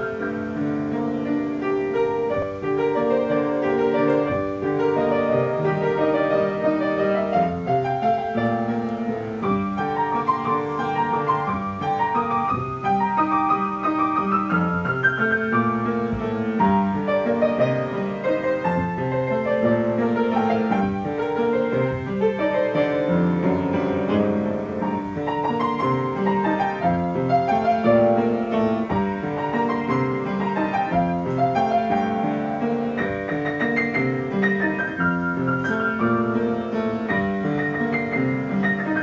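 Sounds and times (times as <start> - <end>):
piano playing: 0.0 - 39.0.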